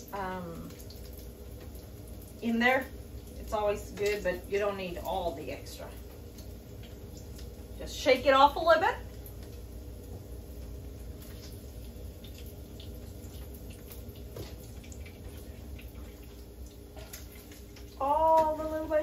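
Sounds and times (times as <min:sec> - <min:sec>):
grease sizzling in a frying pan: 0:00.0 - 0:19.0.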